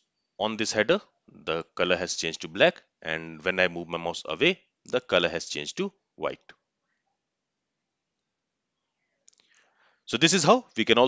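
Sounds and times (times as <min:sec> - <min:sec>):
faint clicks: 0:09.2 - 0:09.6.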